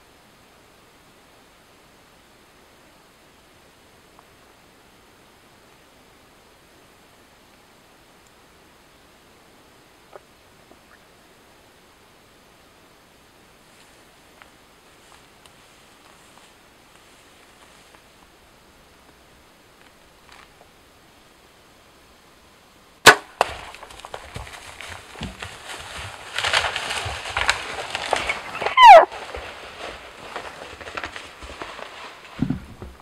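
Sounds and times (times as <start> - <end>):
animal crashing through brush: 23.0 - 33.0
loud falling animal call: 27.6 - 29.4.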